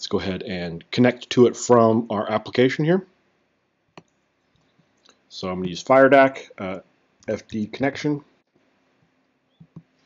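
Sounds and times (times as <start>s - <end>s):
computer mouse click: 4.0s - 4.7s.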